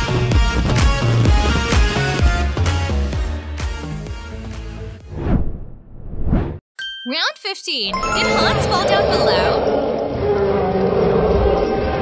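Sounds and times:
music: 0:00.0 - 0:05.1, 0:07.7 - 0:09.0
ding-like chime with sliding tones: 0:06.8 - 0:09.5.

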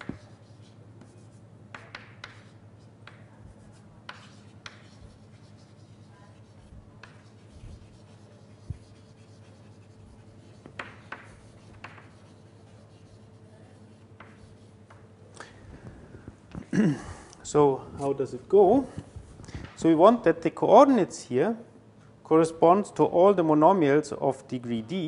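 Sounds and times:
chalk tapping and scratching: 0:00.0 - 0:15.1
low room hum: 0:00.0 - 0:25.0.

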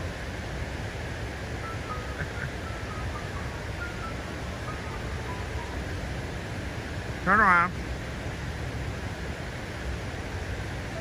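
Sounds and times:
outdoor background hiss: 0:00.0 - 0:11.0
faint high held notes: 0:01.6 - 0:06.7.

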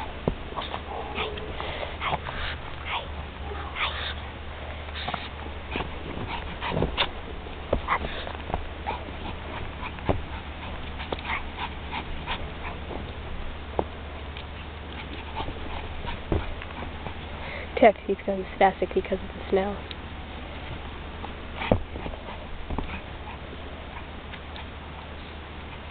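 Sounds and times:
faint dog sounds: 0:00.6 - 0:07.1
dog paws in snow: 0:04.9 - 0:13.2.

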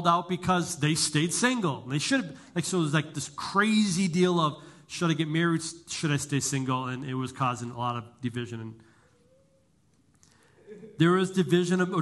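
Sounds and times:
man speaking: 0:00.0 - 0:08.8, 0:10.7 - 0:12.0.

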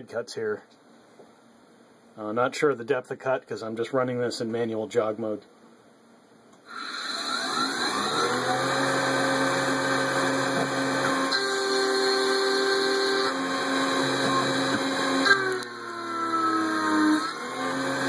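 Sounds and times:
milling spindle whine: 0:06.9 - 0:18.0.

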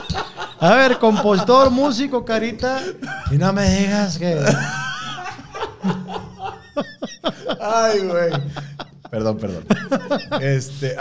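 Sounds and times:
men laughing: 0:00.0 - 0:11.0.

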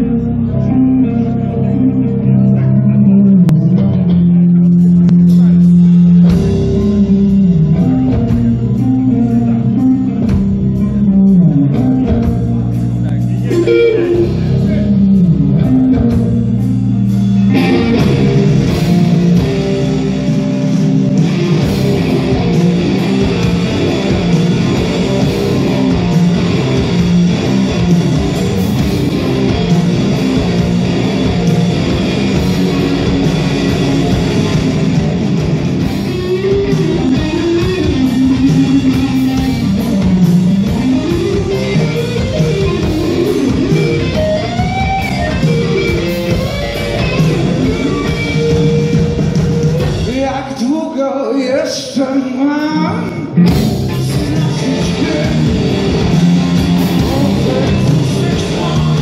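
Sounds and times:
bending guitar melody: 0:00.0 - 0:50.7, 0:52.2 - 0:59.0
live rock band playing: 0:00.0 - 0:59.0.

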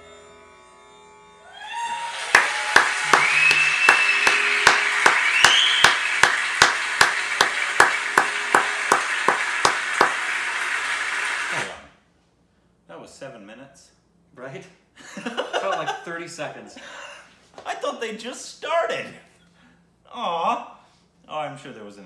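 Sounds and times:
rising whistles: 0:01.5 - 0:11.5
audience applauding and cheering: 0:01.5 - 0:11.8
steady clapping: 0:02.1 - 0:11.7.

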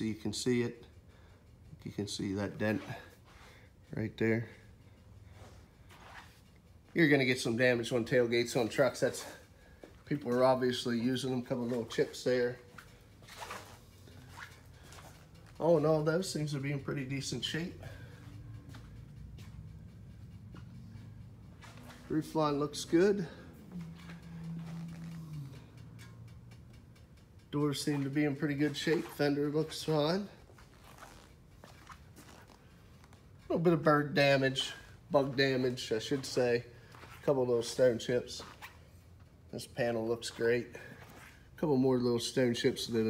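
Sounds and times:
steady low hum: 0:00.0 - 0:43.0
faint footsteps on concrete: 0:09.1 - 0:15.8, 0:16.5 - 0:19.7, 0:27.8 - 0:33.2, 0:34.5 - 0:38.8.

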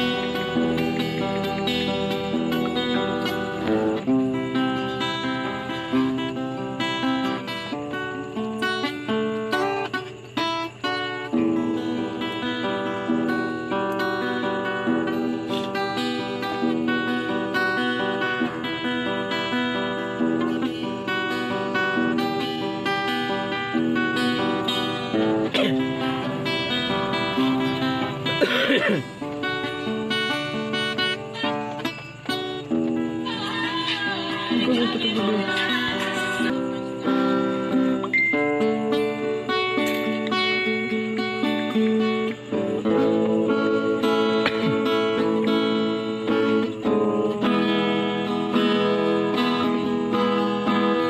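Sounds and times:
guitar picked and strummed: 0:00.0 - 0:51.0.

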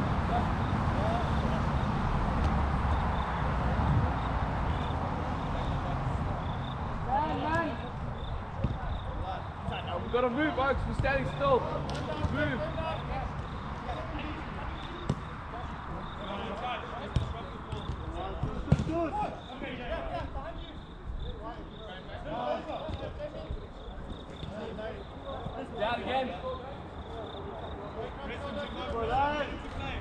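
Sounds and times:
football being kicked: 0:08.6 - 0:08.9, 0:15.0 - 0:15.3, 0:17.1 - 0:19.1.

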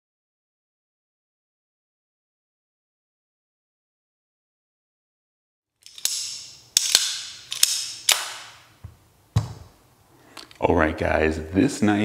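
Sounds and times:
switchblade knife snapping: 0:05.8 - 0:08.6.

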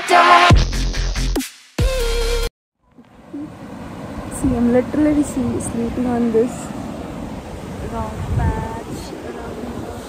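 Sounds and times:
woman speaking: 0:04.3 - 0:06.7, 0:07.8 - 0:10.0.

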